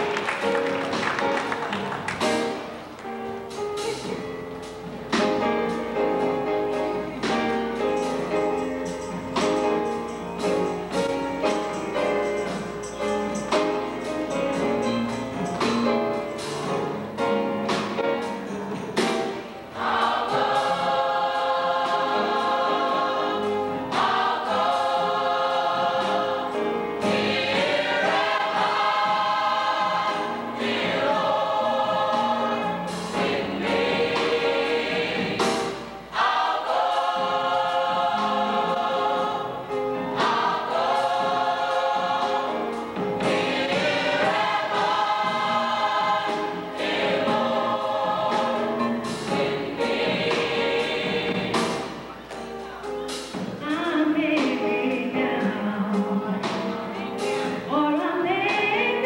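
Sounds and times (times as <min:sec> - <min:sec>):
drum kit hits: 0:03.5 - 0:21.0, 0:27.0 - 0:39.3, 0:40.1 - 0:52.5
gospel choir singing: 0:05.1 - 0:59.0.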